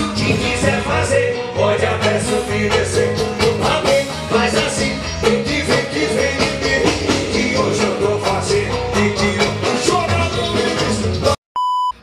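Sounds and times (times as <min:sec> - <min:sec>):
loud live band music: 0:00.0 - 0:11.4
percussion: 0:00.0 - 0:11.4
person singing: 0:00.0 - 0:11.4.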